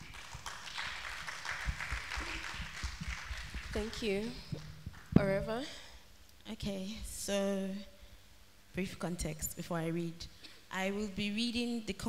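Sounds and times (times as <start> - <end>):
audience applauding: 0.0 - 4.3.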